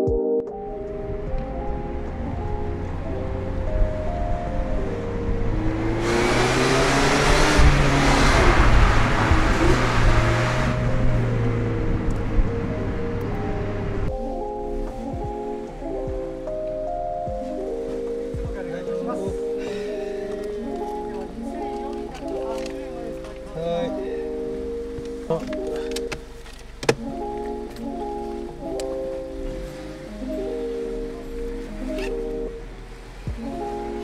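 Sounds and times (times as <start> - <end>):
light melodic background music: 0.0 - 34.0
car engine and tyre noise: 0.5 - 34.0.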